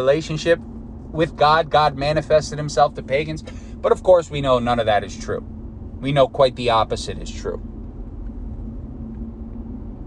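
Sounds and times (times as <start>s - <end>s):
faint constant hum: 0.0s - 10.0s
steady low rumble: 0.0s - 10.0s.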